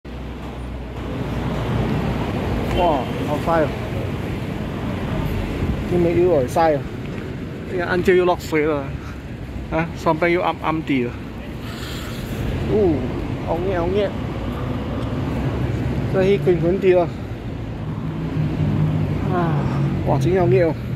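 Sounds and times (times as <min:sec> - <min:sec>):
city street traffic rumble: 0:00.1 - 0:20.9.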